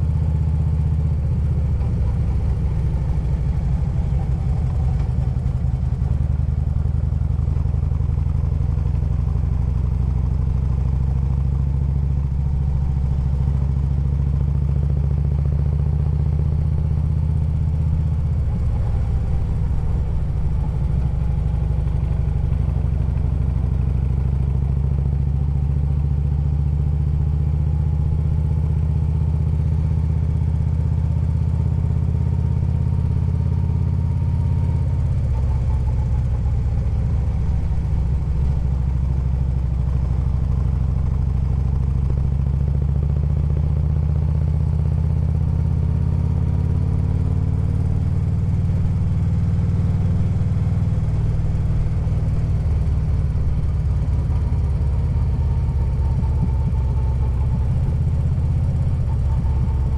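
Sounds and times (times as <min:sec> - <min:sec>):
motorcycle engine running: 0:00.0 - 0:59.9.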